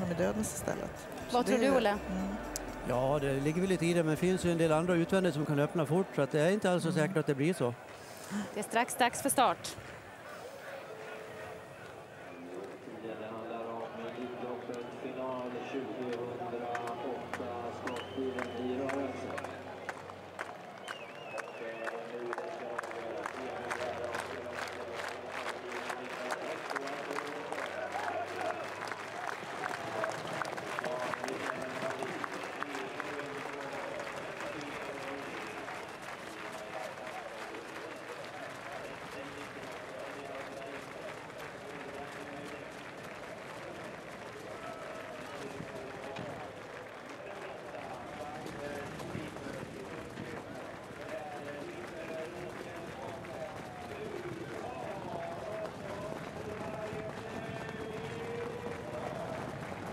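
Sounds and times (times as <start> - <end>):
crowd clapping in rhythm: 0.0 - 10.1, 15.4 - 59.9
murmur of voices: 0.0 - 59.9.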